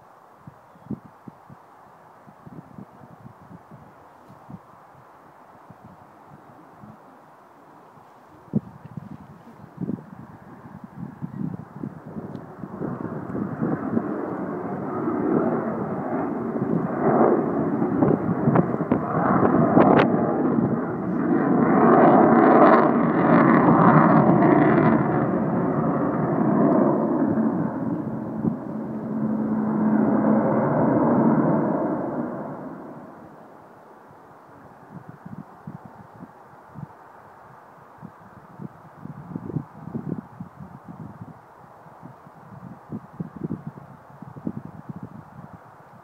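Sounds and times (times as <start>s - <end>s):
jet bomber flying past: 9.2s - 36.8s.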